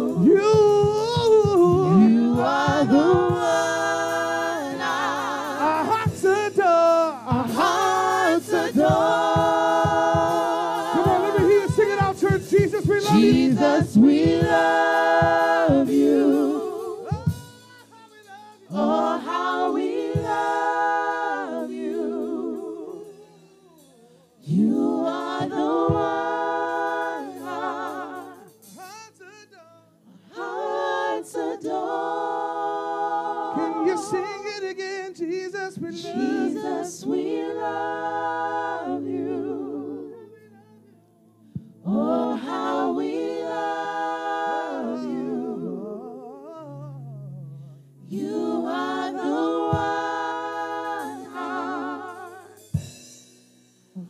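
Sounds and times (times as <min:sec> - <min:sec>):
vocal group singing in harmony: 0:00.0 - 0:53.0.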